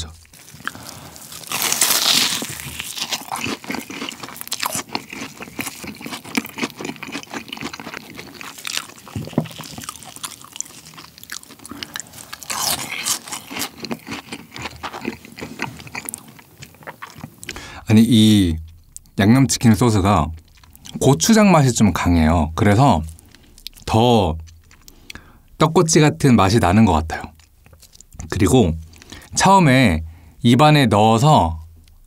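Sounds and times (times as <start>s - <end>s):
crunchy biting and chewing: 0.1s - 21.4s, 22.7s - 25.6s, 27.2s - 29.3s.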